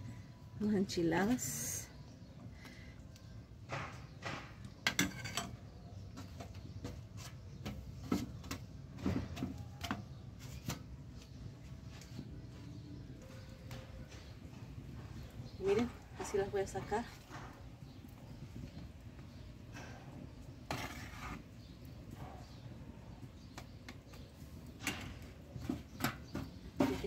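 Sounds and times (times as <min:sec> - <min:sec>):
spoon scraping a frying pan: 0:04.7 - 0:08.7, 0:19.8 - 0:22.5.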